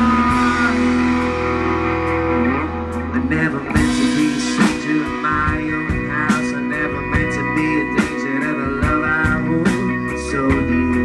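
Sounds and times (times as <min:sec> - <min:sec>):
bass guitar: 0:00.0 - 0:11.0
drum kit beat: 0:00.0 - 0:11.0
electric guitar: 0:00.0 - 0:11.0.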